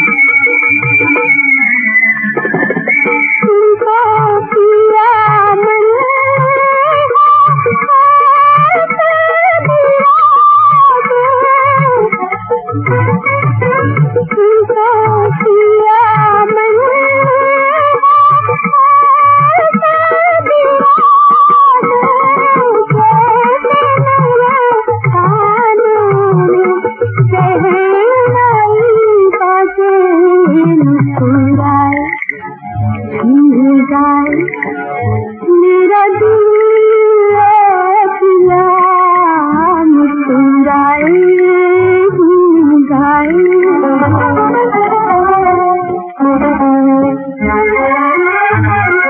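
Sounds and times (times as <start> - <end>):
wavering melodic line: 0.0 - 4.3
instrumental accompaniment: 0.0 - 49.0
plucked strings: 0.0 - 49.0.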